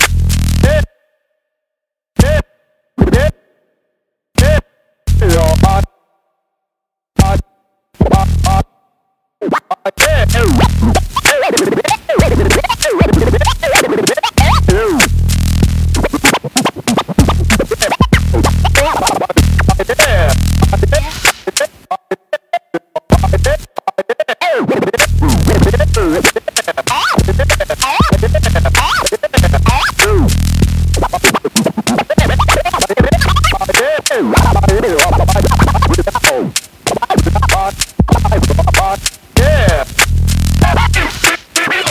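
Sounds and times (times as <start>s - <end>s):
turntable scratching: 0.0s - 0.8s, 2.2s - 2.4s, 3.0s - 3.3s, 4.4s - 5.8s, 7.2s - 7.4s, 8.0s - 8.6s, 9.4s - 41.9s
hip hop beat with low bass: 0.0s - 0.9s, 2.2s - 2.4s, 3.0s - 3.4s, 4.4s - 5.9s, 7.2s - 7.4s, 8.0s - 8.6s, 9.4s - 41.9s.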